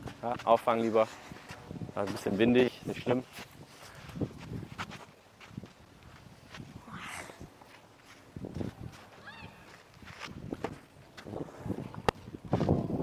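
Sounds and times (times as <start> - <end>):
soft scuffing on clay: 0.0 - 6.8, 7.5 - 11.4.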